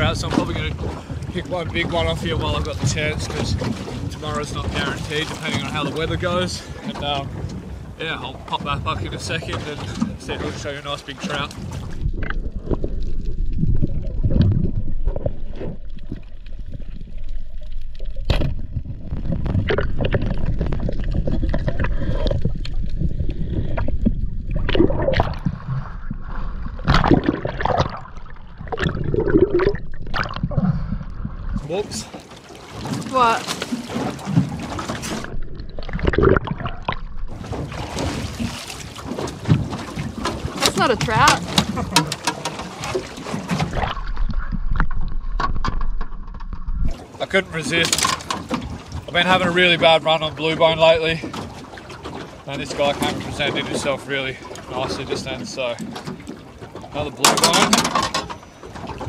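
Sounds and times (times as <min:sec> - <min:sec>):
muffled underwater rumble: 0:00.0 - 0:32.2, 0:34.1 - 0:42.2, 0:42.9 - 0:51.3
water splashing: 0:00.0 - 0:59.0.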